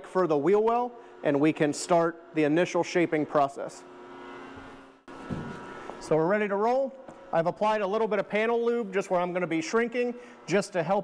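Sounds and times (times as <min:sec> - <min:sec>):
electric motor humming: 0:00.4 - 0:11.0.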